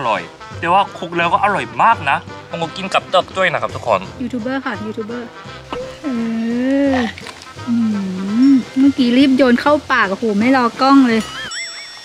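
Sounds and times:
man humming with food in mouth: 5.8 - 8.8.

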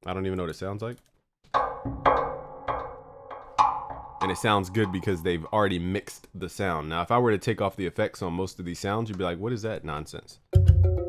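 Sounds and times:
percussive hits on piano strings: 1.5 - 5.2.

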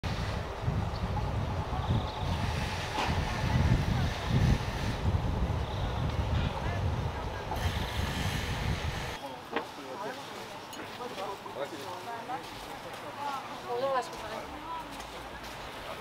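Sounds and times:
wind buffeting microphone: 0.0 - 9.2.

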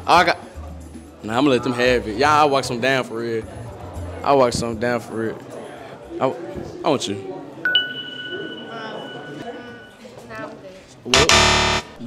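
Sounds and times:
harsh wrong-answer buzzer: 11.1 - 12.0.

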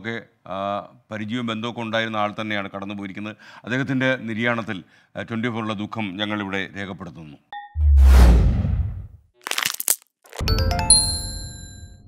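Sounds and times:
low whoosh: 7.8 - 9.2
bright bell-like dings: 10.5 - 12.0.

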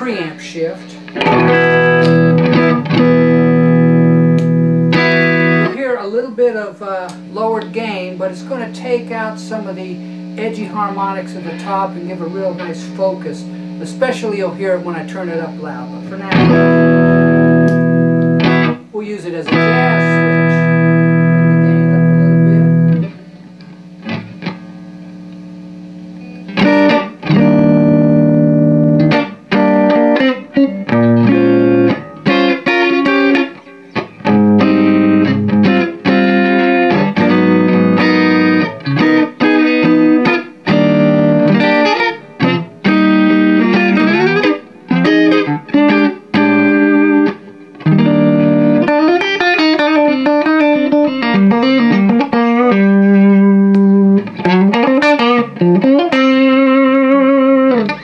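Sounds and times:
electric guitar through tube amp: 0.0 - 58.0.

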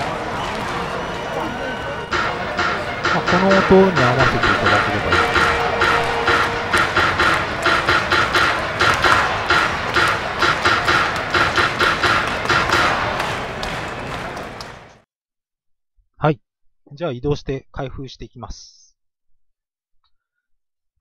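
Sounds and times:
background music with steady beat: 1.2 - 14.9.

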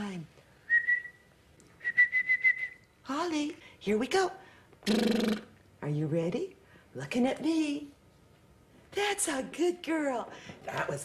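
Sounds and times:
high pulsing whistle: 0.7 - 2.9.

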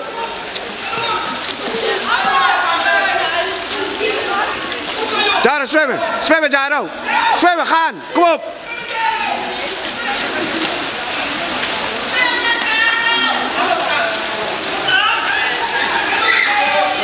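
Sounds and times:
distant shouting voices: 0.0 - 9.6, 12.1 - 14.2, 14.8 - 17.0
water splashing: 0.0 - 17.0.

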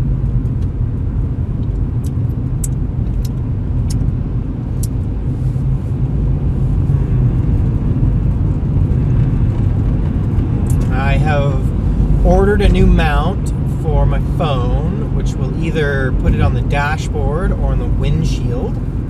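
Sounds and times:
car engine and tyre rumble: 0.0 - 19.0.

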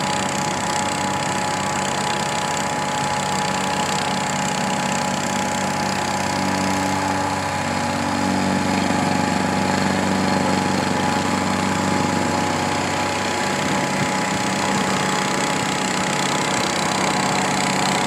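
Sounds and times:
paver engine running: 0.0 - 18.0.

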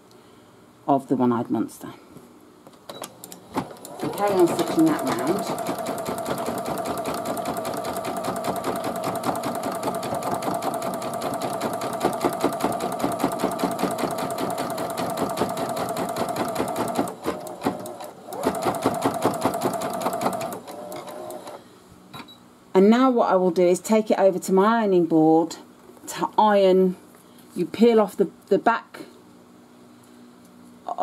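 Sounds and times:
motor hum: 3.1 - 21.6.

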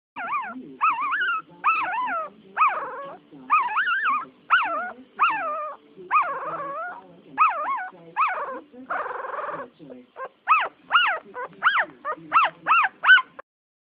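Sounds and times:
puppy whimpering: 0.2 - 13.4.

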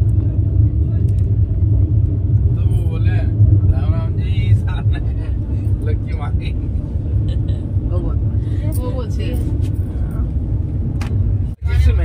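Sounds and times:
train rumble: 0.0 - 12.0.

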